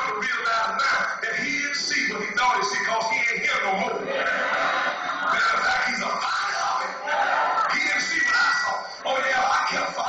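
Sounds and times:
man preaching over loudspeaker: 0:00.0 - 0:04.6, 0:05.2 - 0:10.0.

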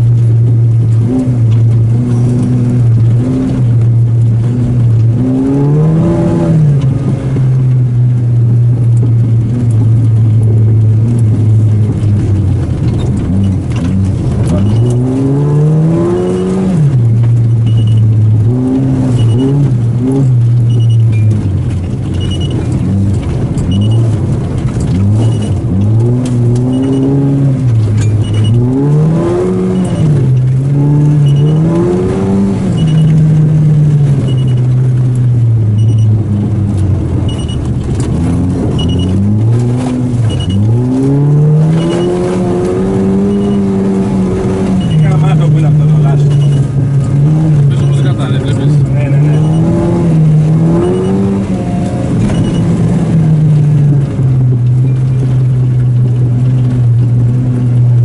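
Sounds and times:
car engine revving: 0:00.0 - 0:58.0
short high beeps: 0:37.3 - 0:37.6.

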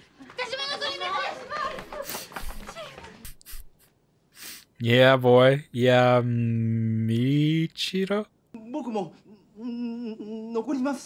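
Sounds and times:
soft breathy voice: 0:09.1 - 0:10.7.

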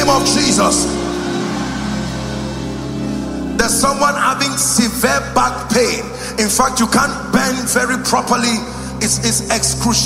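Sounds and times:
held music chord: 0:00.0 - 0:09.7
low sustained bass tone: 0:00.0 - 0:10.0.

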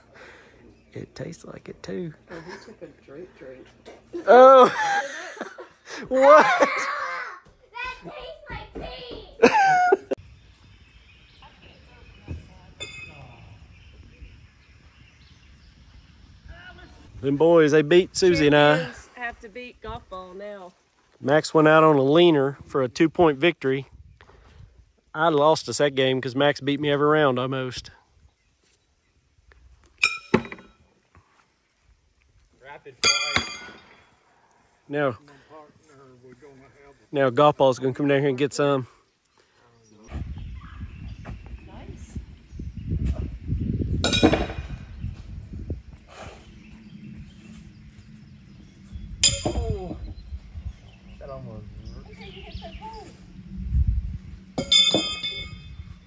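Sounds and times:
horseshoes clanging on steel stake: 0:12.8 - 0:13.3, 0:30.0 - 0:30.8, 0:33.0 - 0:34.1, 0:44.0 - 0:44.8, 0:49.2 - 0:49.8, 0:54.6 - 0:55.8.

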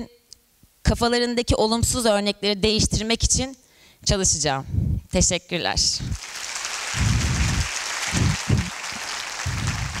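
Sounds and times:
audience applauding: 0:06.2 - 0:10.0
low rumbles: 0:07.0 - 0:08.7.

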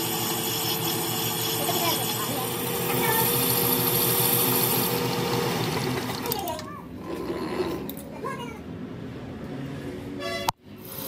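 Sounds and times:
metal lathe running: 0:00.0 - 0:06.6.

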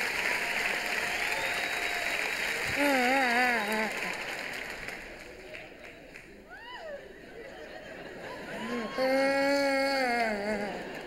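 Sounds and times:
man wailing mock crying: 0:02.7 - 0:04.1, 0:08.6 - 0:11.0.

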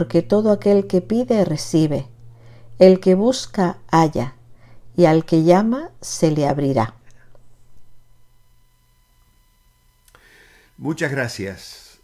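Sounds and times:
faint thin steady tones: 0:00.0 - 0:12.0
steady hum: 0:00.0 - 0:12.0
faint breath: 0:02.3 - 0:02.8, 0:04.5 - 0:04.9, 0:10.1 - 0:10.8.

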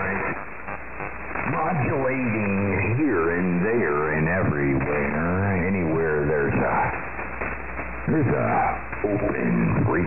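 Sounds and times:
radio static: 0:00.0 - 0:10.0
man's voice over radio: 0:01.5 - 0:07.0, 0:08.1 - 0:10.0.

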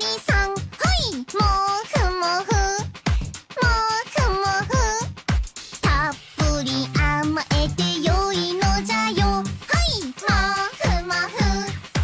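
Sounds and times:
upbeat pop song with female vocal: 0:00.0 - 0:05.1, 0:05.8 - 0:12.0
kick drum beat: 0:00.3 - 0:12.0.

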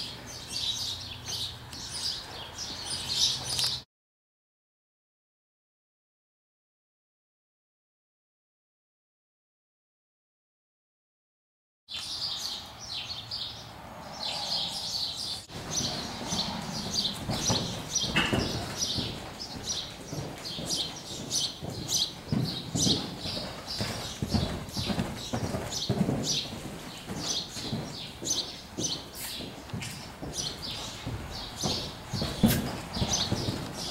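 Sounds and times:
small birds calling: 0:00.0 - 0:03.8, 0:11.9 - 0:33.9
hoofbeats on soft footing: 0:15.5 - 0:33.9.

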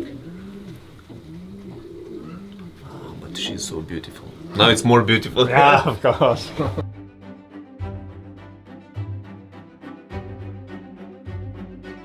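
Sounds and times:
pigeon cooing: 0:00.0 - 0:05.9.

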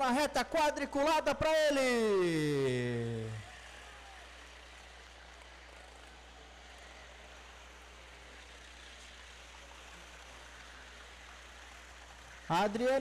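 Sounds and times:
faint steady hiss: 0:00.0 - 0:13.0.

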